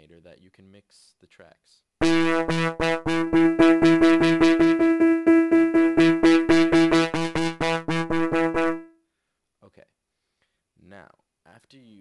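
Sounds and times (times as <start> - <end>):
repeated synth piano note: 2.0 - 8.9.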